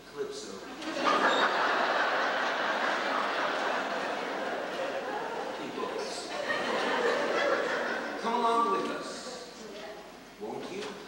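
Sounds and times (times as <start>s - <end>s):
audience applauding: 1.1s - 5.9s.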